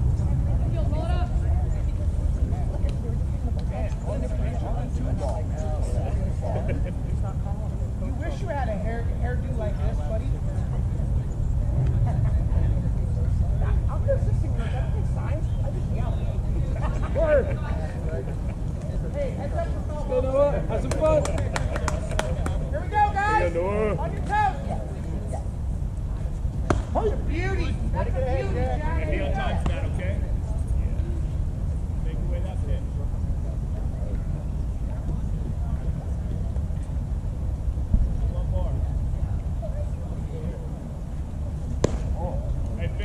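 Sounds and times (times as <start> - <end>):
steady low rumble: 0.0 - 22.8.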